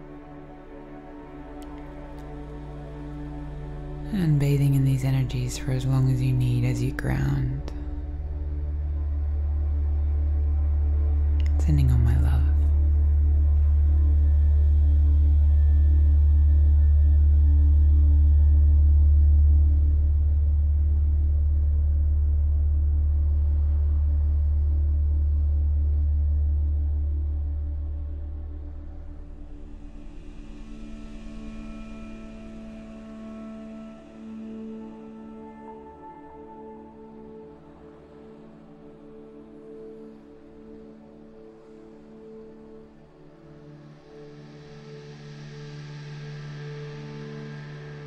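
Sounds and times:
deep drone: 0.0s - 48.0s
soft hiss: 0.0s - 48.0s.

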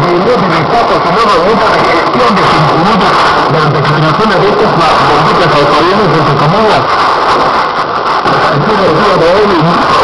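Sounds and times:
man talking over radio: 0.0s - 10.0s
radio static hiss: 0.0s - 10.0s.

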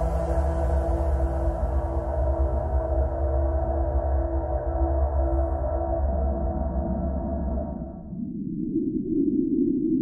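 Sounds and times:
low ominous drone chord: 0.0s - 6.6s.

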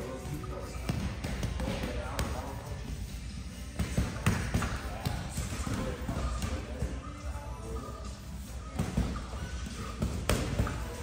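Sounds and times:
boxing gloves hitting punching bag: 3.8s - 6.8s, 8.7s - 11.0s.

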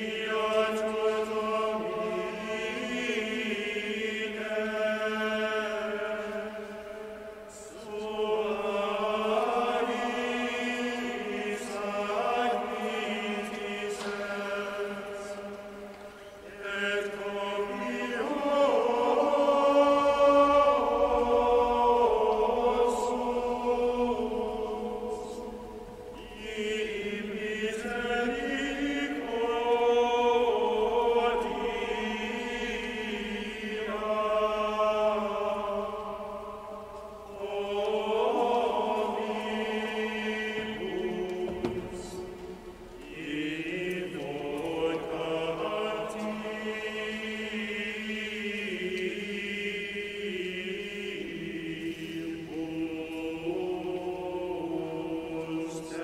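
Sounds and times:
choir chanting: 0.0s - 56.0s.

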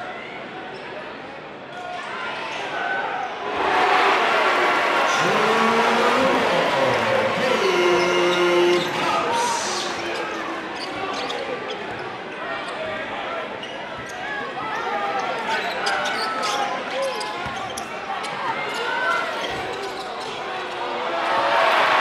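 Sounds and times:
crowd chatter and shouts: 0.0s - 22.0s
sneaker squeaks: 15.2s - 18.0s.

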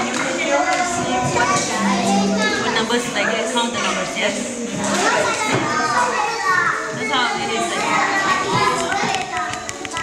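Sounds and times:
children chattering and calling: 0.0s - 10.0s.

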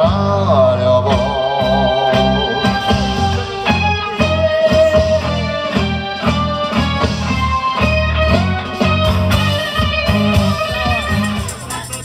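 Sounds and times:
live rock band playing: 0.0s - 12.0s
sustained guitar line: 0.0s - 12.0s.

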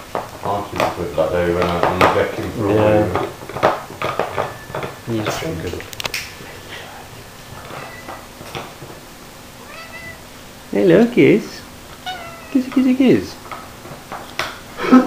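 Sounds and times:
pet animal crying: 6.7s - 8.8s, 9.5s - 10.6s, 11.8s - 12.8s.

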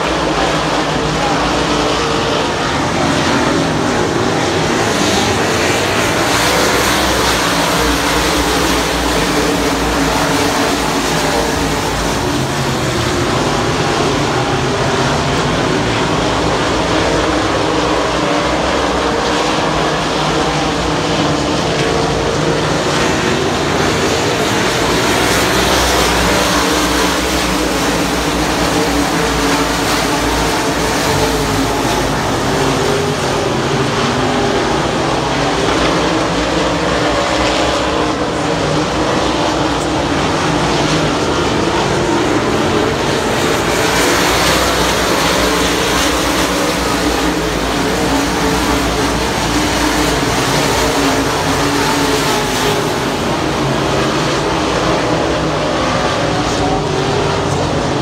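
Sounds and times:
race car engines running: 0.0s - 58.0s.

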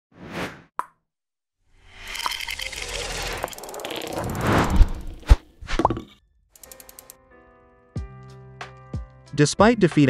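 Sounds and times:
sharp clicks: 6.6s - 7.2s.

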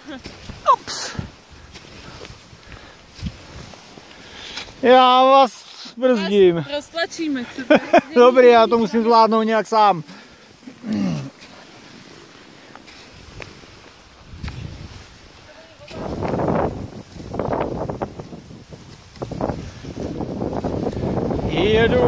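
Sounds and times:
skis hissing over snow: 0.0s - 22.0s
wind buffeting microphone: 13.0s - 22.0s.

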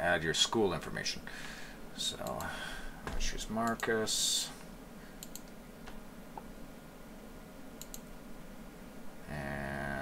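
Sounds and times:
man humming low: 9.2s - 10.0s.

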